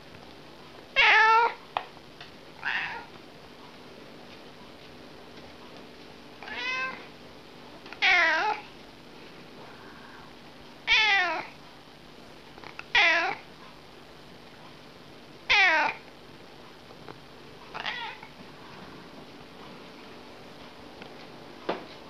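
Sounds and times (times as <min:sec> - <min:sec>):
cat meowing: 0:01.0 - 0:01.6, 0:02.6 - 0:03.1, 0:06.4 - 0:07.1, 0:08.0 - 0:08.6, 0:10.9 - 0:11.5, 0:12.9 - 0:13.4, 0:15.5 - 0:16.0, 0:17.8 - 0:18.2.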